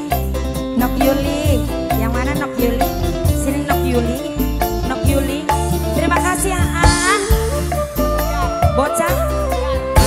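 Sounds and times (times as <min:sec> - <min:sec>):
live dangdut band music: 0:00.0 - 0:10.0.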